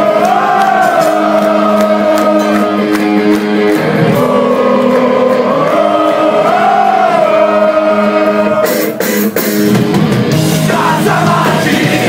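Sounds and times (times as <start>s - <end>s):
voices singing: 0.0s - 3.2s, 3.8s - 9.1s, 10.4s - 12.0s
drums and cymbals crashing: 0.0s - 5.1s, 8.6s - 12.0s
distorted guitar chords: 0.0s - 12.0s.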